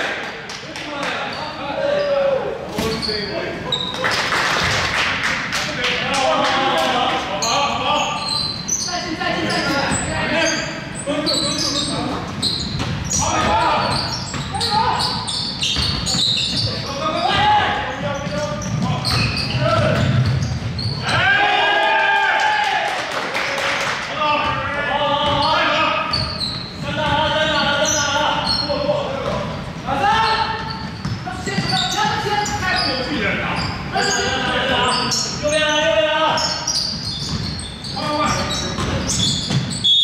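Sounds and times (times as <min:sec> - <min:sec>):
sneakers squeaking: 0:00.9 - 0:05.5, 0:06.6 - 0:21.6, 0:24.2 - 0:40.0
players calling out: 0:05.7 - 0:23.1
basketball bouncing: 0:12.6 - 0:14.7, 0:15.6 - 0:17.4, 0:18.0 - 0:21.1, 0:24.4 - 0:25.5, 0:26.2 - 0:27.7, 0:30.5 - 0:32.3, 0:36.9 - 0:39.8.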